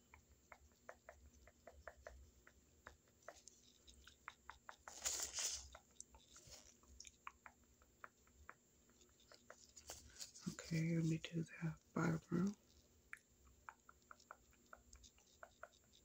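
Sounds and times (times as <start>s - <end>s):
faint clicking and scratching: 0.0s - 16.0s.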